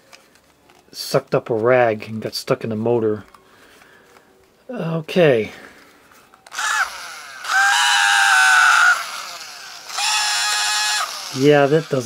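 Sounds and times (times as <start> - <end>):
small vacuum motor whining: 6.5 - 12.0.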